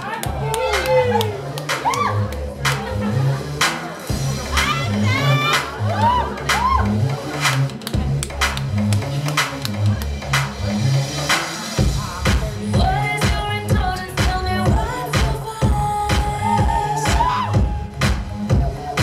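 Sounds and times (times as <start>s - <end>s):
electronic dance music: 0.0s - 19.0s.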